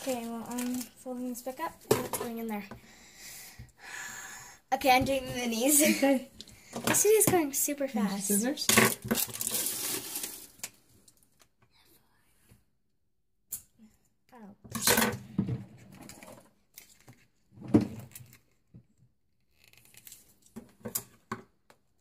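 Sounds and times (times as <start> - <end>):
scissors cutting plastic packaging: 0.0 - 0.9, 8.8 - 10.8
plastic packaging tearing: 0.0 - 1.0, 8.9 - 10.8.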